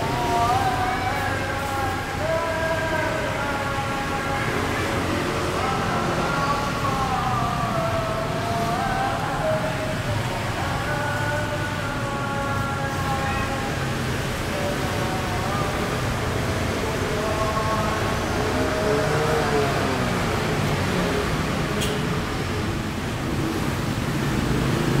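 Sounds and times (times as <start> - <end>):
faint voices: 0.0 - 23.2
passing traffic: 0.0 - 25.0.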